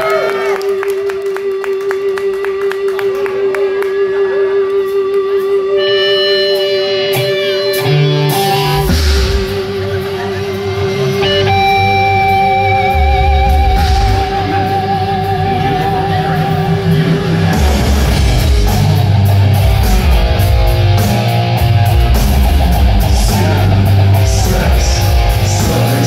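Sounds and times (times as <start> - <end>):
crowd whistling and cheering: 0.0 - 5.5
electric guitar notes: 0.0 - 26.0
drums and bass: 4.8 - 26.0.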